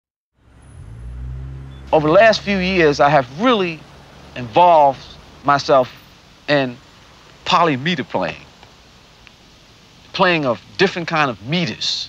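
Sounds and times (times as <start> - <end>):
low rumble: 0.4 - 6.0
man's voice: 1.9 - 3.8, 4.4 - 6.8, 7.5 - 8.4, 10.2 - 12.0.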